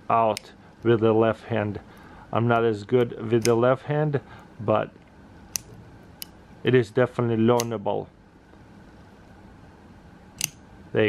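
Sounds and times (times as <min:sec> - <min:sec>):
knife blade snapping shut: 0:10.4 - 0:10.6.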